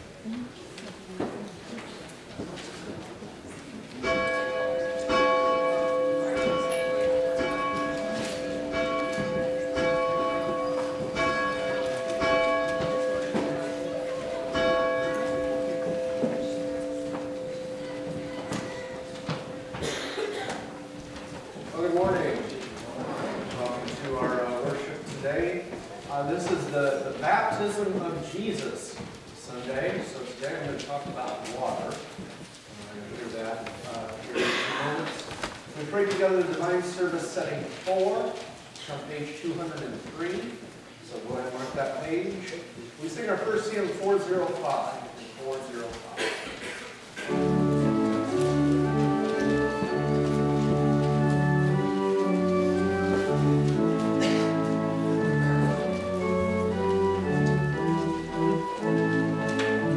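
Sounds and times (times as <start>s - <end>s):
church bell tolling: 4.0s - 22.2s, 47.2s - 59.9s.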